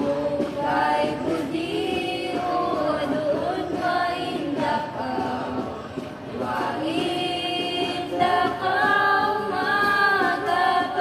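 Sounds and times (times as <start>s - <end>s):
group of people singing: 0.0s - 11.0s.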